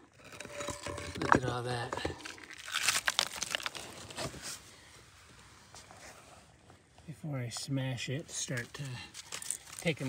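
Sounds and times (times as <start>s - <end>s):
scrapes and knocks on gravel: 8.5s - 10.0s.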